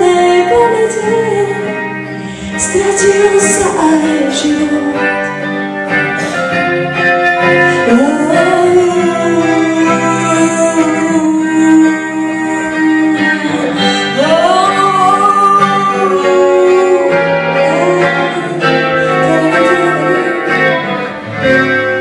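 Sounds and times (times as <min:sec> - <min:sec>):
woman singing: 0:00.0 - 0:06.7, 0:07.4 - 0:22.0
band with electric guitar: 0:00.0 - 0:22.0.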